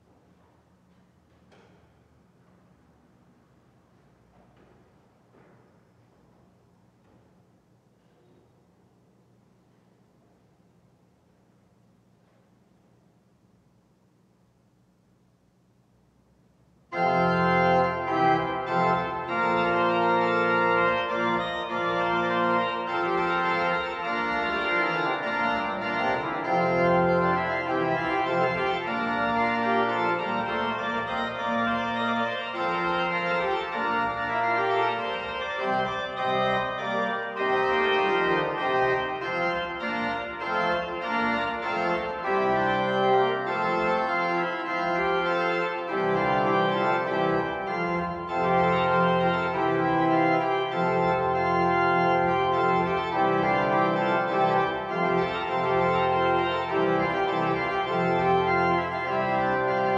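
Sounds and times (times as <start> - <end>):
pipe organ dance music: 16.9 - 59.9.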